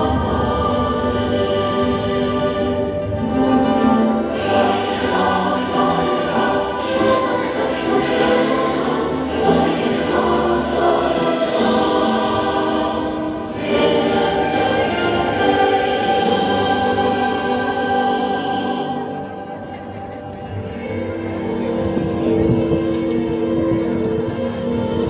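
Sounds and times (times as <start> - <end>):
choir singing a hymn: 0.0 - 25.0.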